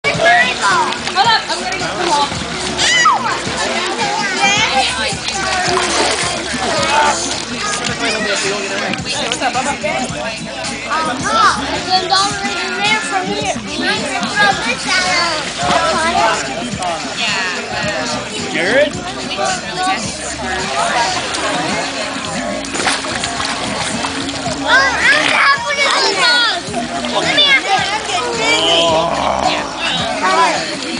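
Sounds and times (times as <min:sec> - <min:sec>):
pool water splashing: 0:00.0 - 0:30.9
voices: 0:00.0 - 0:30.9
high-pitched voice calling out: 0:28.5 - 0:29.7.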